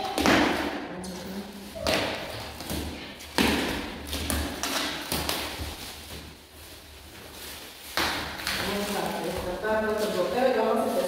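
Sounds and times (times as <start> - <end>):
plastic stretch wrap ripping: 4.0 - 11.0.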